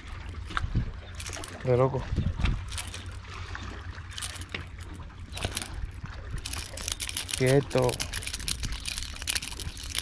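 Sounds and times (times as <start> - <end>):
wind rumble on microphone: 0.0 - 3.8
water lapping against rocks: 0.0 - 10.0.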